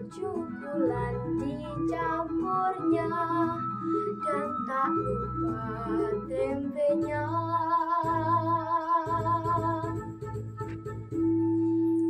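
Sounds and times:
girl singing with vibrato: 0.0 - 10.1
piano accompaniment: 0.0 - 12.0.

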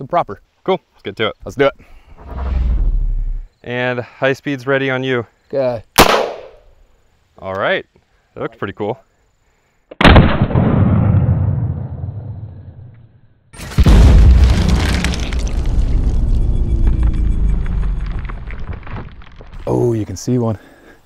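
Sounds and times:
shotgun shot: 6.0 - 6.6, 10.0 - 12.4
deep boom: 10.0 - 12.9, 13.6 - 19.7.

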